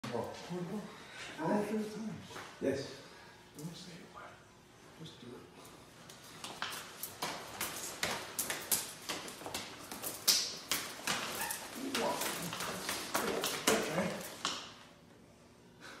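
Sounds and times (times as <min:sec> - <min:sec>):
hands slapping forearms: 0:06.1 - 0:14.8
cloth rustle: 0:06.2 - 0:14.4.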